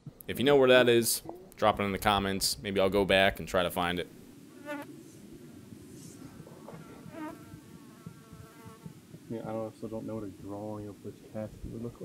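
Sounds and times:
low uneven rumble: 1.2 - 12.0
fly buzzing: 4.5 - 9.2.

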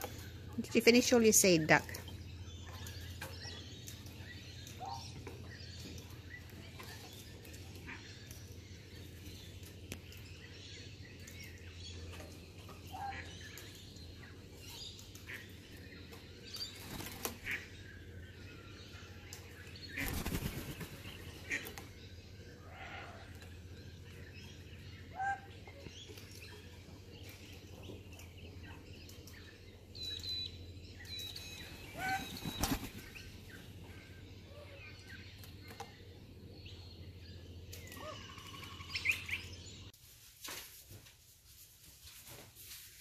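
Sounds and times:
bird wings flapping: 16.7 - 17.6, 20.0 - 21.2, 32.0 - 33.2.

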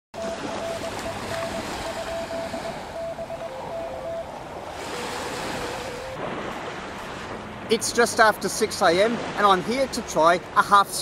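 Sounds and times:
morse code tones from radio: 0.2 - 6.2
surf: 0.2 - 11.0
wind: 0.2 - 11.0.

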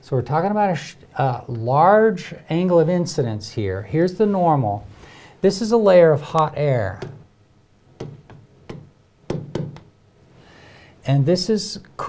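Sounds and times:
stylus tapping on touchscreen glass: 8.0 - 9.9.

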